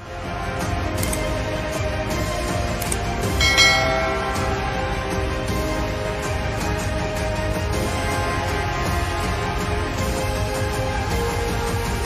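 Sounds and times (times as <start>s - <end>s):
background music: 0.0s - 12.0s
bright bell-like chime: 3.4s - 6.1s.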